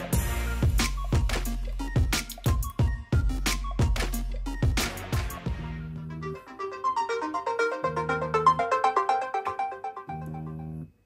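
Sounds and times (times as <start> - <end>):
phone ringtone melody: 6.2 - 10.9.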